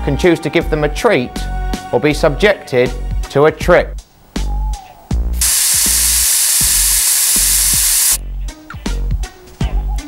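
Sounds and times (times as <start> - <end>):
aerosol can spraying: 5.4 - 8.2.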